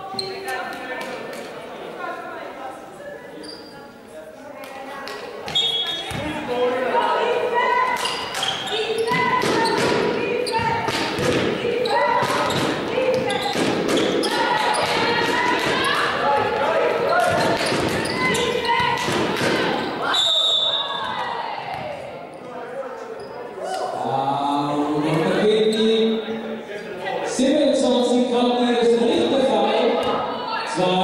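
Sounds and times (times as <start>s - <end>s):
calls echoing in hall: 0.0s - 31.0s
basketball bouncing: 9.0s - 19.7s
whistle blast: 20.0s - 20.9s.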